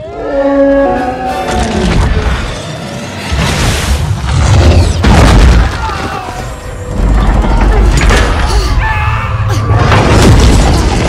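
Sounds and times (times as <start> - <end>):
crackling debris burst: 1.5 - 8.7, 9.7 - 11.0
deep explosion booms: 3.3 - 5.9, 9.7 - 11.0.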